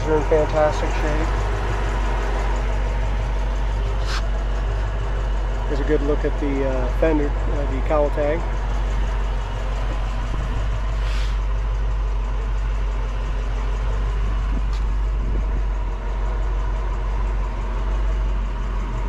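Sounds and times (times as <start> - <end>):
car engine idling: 0.0 - 19.0.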